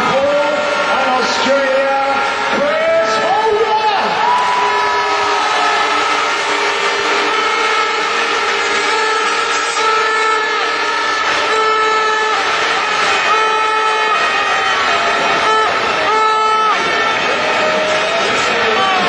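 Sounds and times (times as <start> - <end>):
air horns blowing: 0.0 - 19.0
stadium crowd noise: 0.0 - 19.0.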